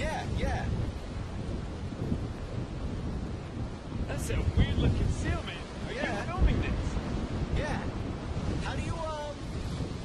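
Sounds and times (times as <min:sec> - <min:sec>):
ocean surf around rocks: 0:00.0 - 0:10.0
wind buffeting microphone: 0:00.0 - 0:10.0.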